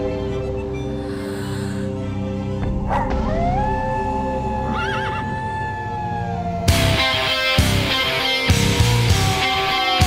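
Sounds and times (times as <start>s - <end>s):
slow dark music: 0.0s - 10.0s
wolf howling: 2.8s - 8.2s.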